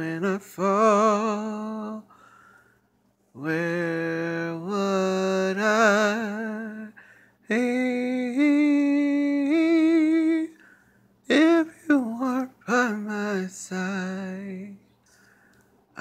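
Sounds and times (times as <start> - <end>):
man singing without words: 0.0 - 2.4, 3.3 - 14.9.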